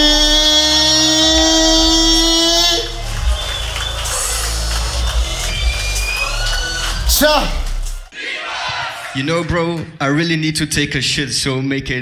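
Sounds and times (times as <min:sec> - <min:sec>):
beatboxer buzzing note: 0:00.0 - 0:03.1
low bass: 0:00.0 - 0:08.1
mixed stage sound: 0:00.0 - 0:12.0.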